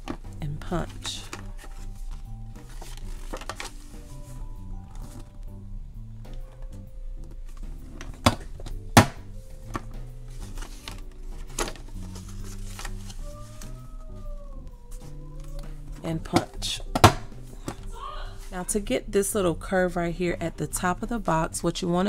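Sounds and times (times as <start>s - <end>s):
soft background music: 0.0s - 22.0s
paper handled on board: 8.0s - 14.0s.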